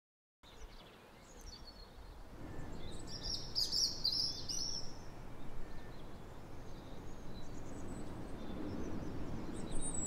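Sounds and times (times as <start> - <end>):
small birds chirping: 0.4 - 10.0.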